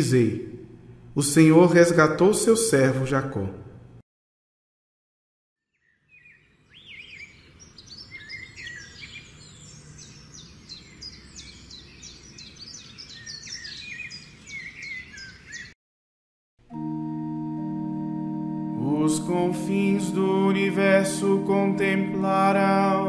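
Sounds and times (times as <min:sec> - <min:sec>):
birds chirping and singing: 0:05.8 - 0:15.8
held instrumental notes: 0:16.6 - 0:23.0.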